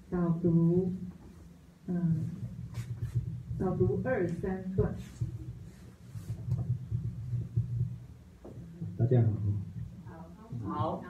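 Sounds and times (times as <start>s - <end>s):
microphone handling rumble: 2.3s - 10.9s.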